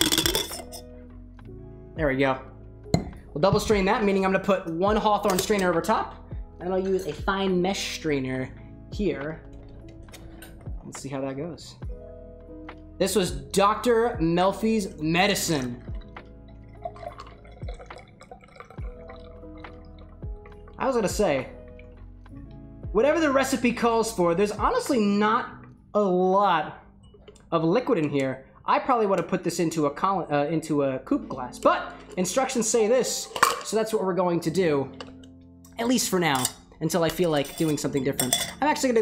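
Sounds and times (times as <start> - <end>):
ice rattling in cocktail shaker: 0.0 - 0.8, 16.7 - 19.7, 37.2 - 38.7
soft background music: 0.0 - 39.0
liquid trickling through strainer: 15.9 - 20.6.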